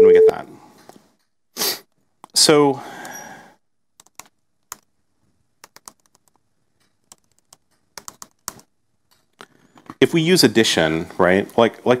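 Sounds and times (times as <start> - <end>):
computer keyboard typing: 4.0 - 4.9, 5.6 - 9.6.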